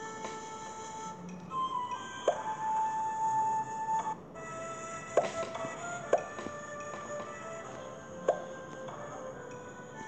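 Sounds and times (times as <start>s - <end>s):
background music notes: 0.0s - 10.0s.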